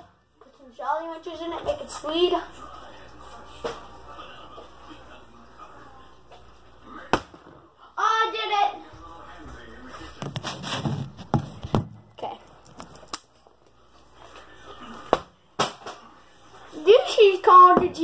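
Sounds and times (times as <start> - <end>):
rustling and handling noise: 9.7 - 14.7.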